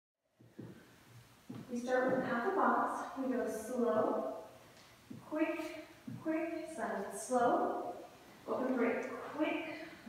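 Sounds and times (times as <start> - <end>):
woman speaking: 1.7 - 4.4, 5.2 - 10.0.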